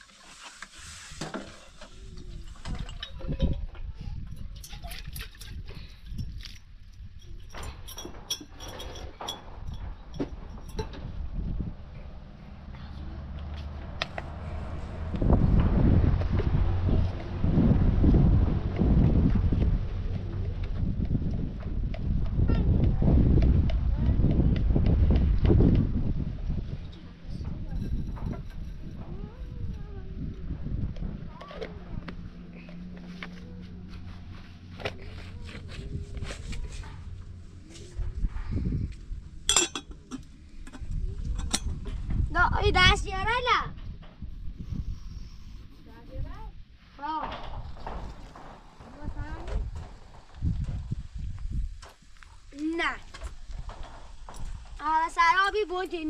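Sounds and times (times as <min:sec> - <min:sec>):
loud low rumbling: 0:10.0 - 0:51.8
metal teapot lid clinking: 0:39.5 - 0:40.3.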